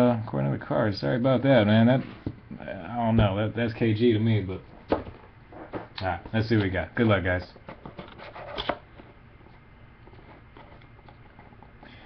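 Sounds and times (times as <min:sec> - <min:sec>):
fingers scraping card box: 0:07.8 - 0:08.9.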